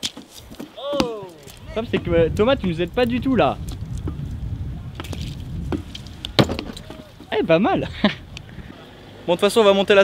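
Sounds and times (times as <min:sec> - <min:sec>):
sharp knocks: 0:05.7 - 0:07.0.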